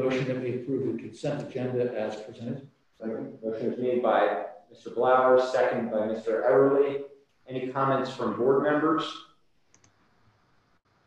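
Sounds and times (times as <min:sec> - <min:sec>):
man speaking: 0:00.0 - 0:09.2
faint clicks: 0:09.6 - 0:10.1.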